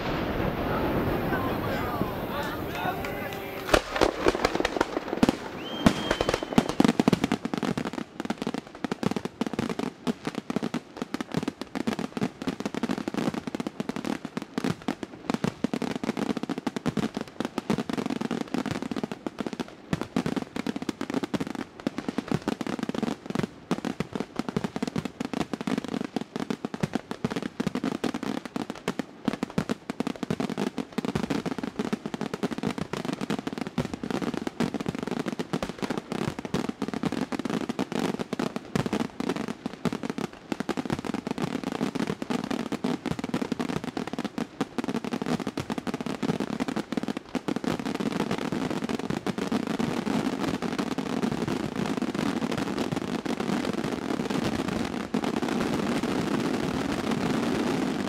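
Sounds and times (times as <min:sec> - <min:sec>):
fireworks shell bursts: 0:00.0 - 0:06.8
firework whistle: 0:00.0 - 0:07.1.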